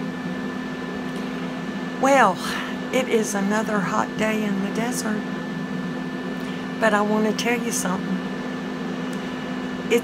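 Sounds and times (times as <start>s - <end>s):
cooling fan humming: 0.0s - 10.0s.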